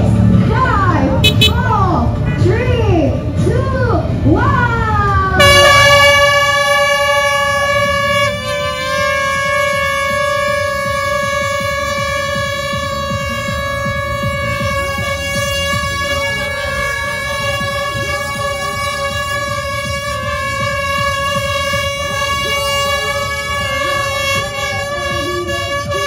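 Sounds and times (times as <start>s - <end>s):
crowd noise: 0.0s - 26.0s
air horn long tone: 1.2s - 1.7s, 5.4s - 26.0s.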